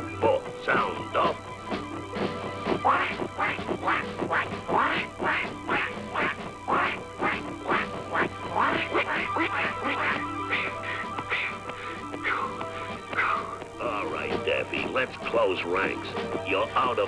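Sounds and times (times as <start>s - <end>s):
orchestral cartoon music: 0.0s - 17.0s
cartoon ducks quacking: 2.7s - 15.1s.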